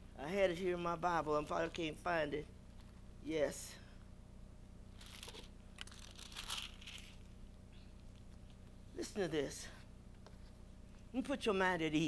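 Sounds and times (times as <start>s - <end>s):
paper pages rustling: 5.0s - 7.3s.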